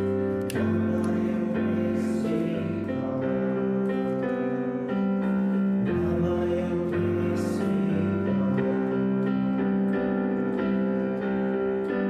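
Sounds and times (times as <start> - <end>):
digital piano chords: 0.0 - 12.0.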